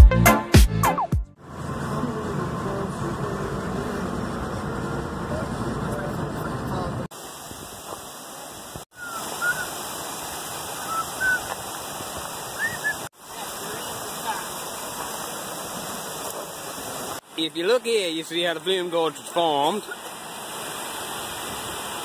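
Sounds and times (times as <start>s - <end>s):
car cabin road noise: 1.4s - 7.1s
rushing stream water: 7.0s - 22.0s.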